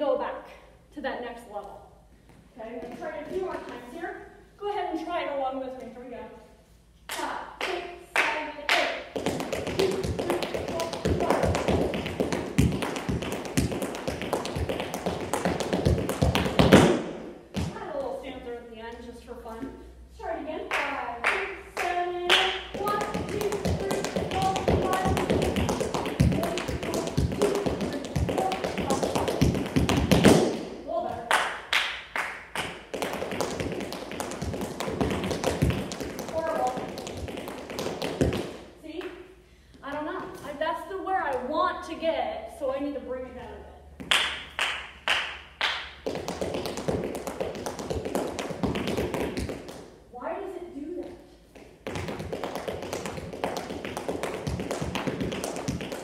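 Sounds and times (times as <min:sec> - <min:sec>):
tap shoes on hard floor: 0:09.2 - 0:17.9, 0:22.7 - 0:31.2, 0:32.9 - 0:38.5, 0:46.0 - 0:49.8, 0:51.5 - 0:56.0.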